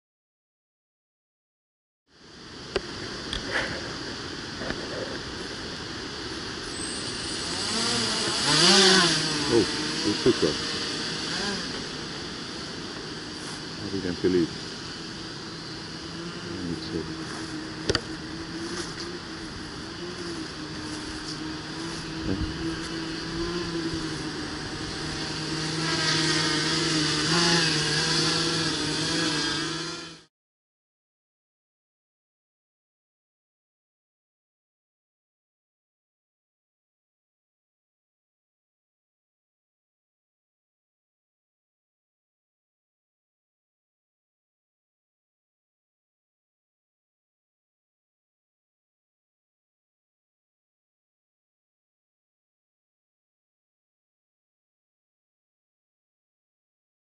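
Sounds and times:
drone motors whining: 0:03.3 - 0:30.3.

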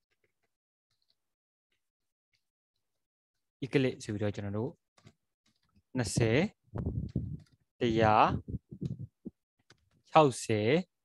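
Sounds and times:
faint keyboard keystrokes: 0:05.0 - 0:05.9
person speaking: 0:06.0 - 0:09.3.

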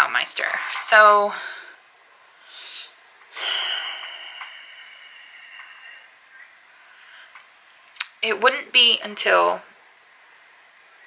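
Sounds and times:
hissing breath with whistle: 0:02.5 - 0:06.1.

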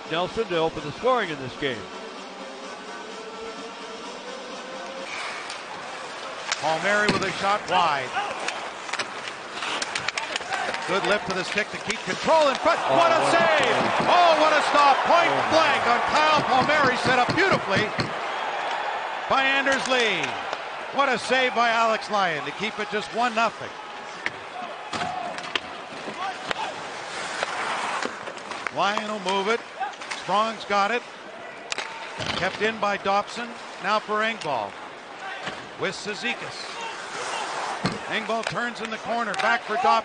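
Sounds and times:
arena crowd noise: 0:00.0 - 0:27.9, 0:28.8 - 0:40.0
hockey sticks and puck on ice: 0:04.8 - 0:31.1, 0:31.7 - 0:40.0
sticks and puck clicking on ice: 0:05.4 - 0:07.6, 0:08.2 - 0:14.6, 0:38.1 - 0:39.7.

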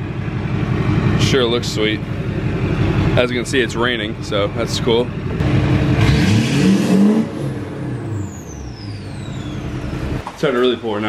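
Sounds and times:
diesel engine revving: 0:00.0 - 0:10.2
high turbo whistle: 0:08.0 - 0:10.0.

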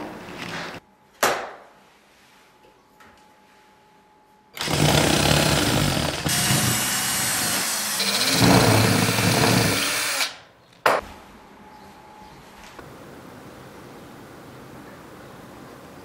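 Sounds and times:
cordless drill driving screw: 0:04.6 - 0:10.3.

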